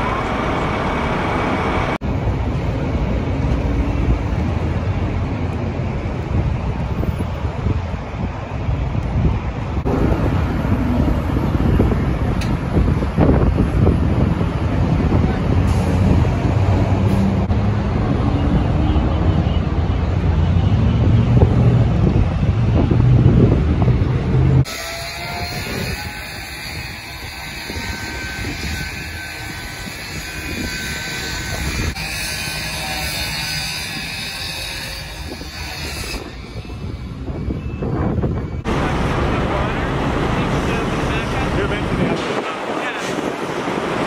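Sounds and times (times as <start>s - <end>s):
engines rumbling on freeway: 0.0s - 44.0s
wind buffeting microphone: 0.6s - 44.0s.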